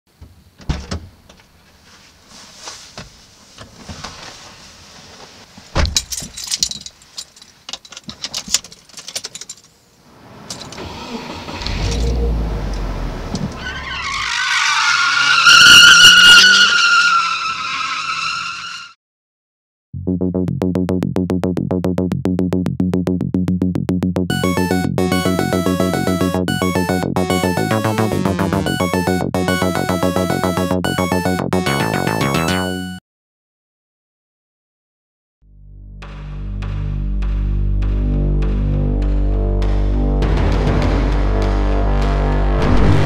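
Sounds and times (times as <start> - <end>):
rattling clicks like jangling keys: 6.0 - 9.7
car engine rumble: 10.1 - 14.3
tyre squeal: 13.5 - 19.0.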